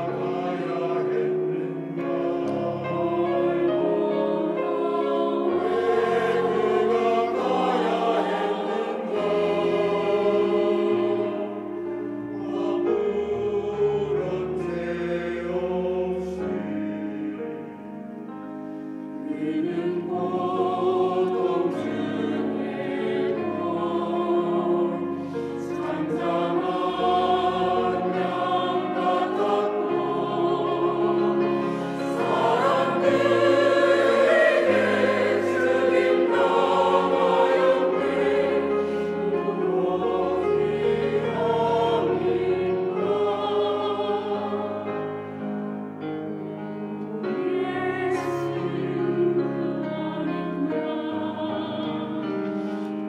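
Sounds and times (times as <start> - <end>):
church choir singing: 0.0 - 53.0.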